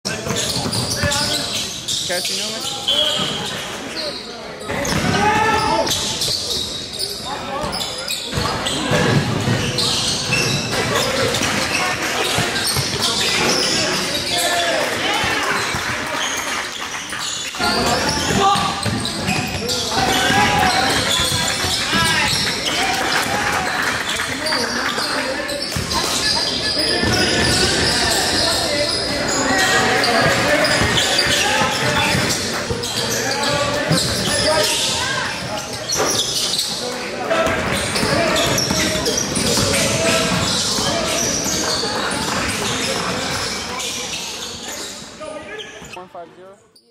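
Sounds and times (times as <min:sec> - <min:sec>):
basketballs bouncing on gym floor: 0:00.1 - 0:01.4, 0:04.7 - 0:06.6, 0:07.6 - 0:14.4, 0:17.7 - 0:23.5, 0:25.6 - 0:43.6.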